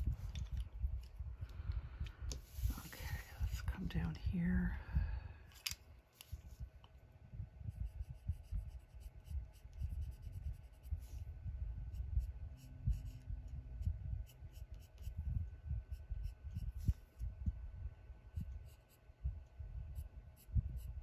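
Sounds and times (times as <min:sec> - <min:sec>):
colored pencil scratching on paper: 0:07.7 - 0:11.2, 0:11.9 - 0:15.2.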